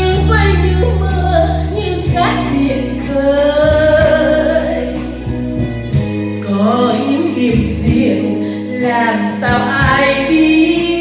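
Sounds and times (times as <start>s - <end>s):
woman singing: 0.0s - 5.2s, 6.4s - 11.0s
instrumental backing track: 0.0s - 11.0s.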